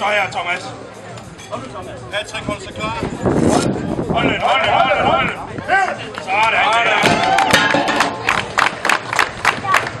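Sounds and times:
crowd clapping: 5.9s - 10.0s.

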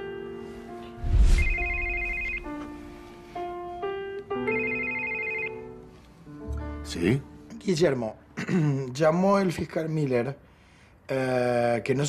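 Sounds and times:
mobile phone ringtone melody: 1.4s - 2.7s, 4.4s - 5.8s.

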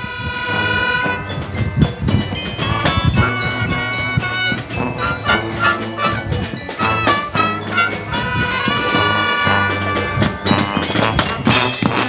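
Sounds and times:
brass sustained chord: 0.0s - 1.4s, 2.7s - 12.0s
low drum beats: 0.0s - 12.0s.

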